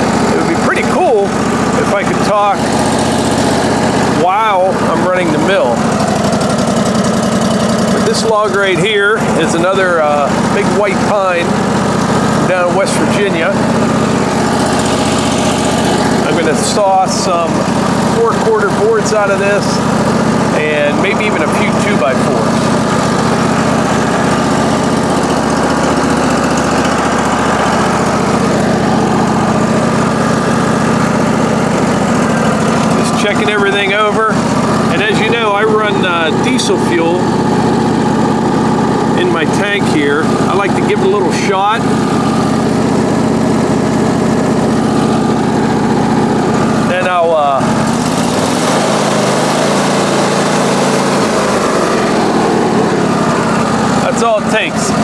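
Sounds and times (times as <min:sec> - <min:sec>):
sawmill engine running: 0:00.0 - 0:55.0.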